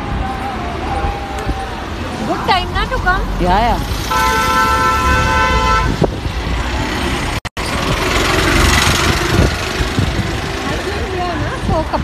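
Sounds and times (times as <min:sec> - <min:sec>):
passing vehicles: 0:00.0 - 0:12.0
car horn: 0:04.0 - 0:06.1.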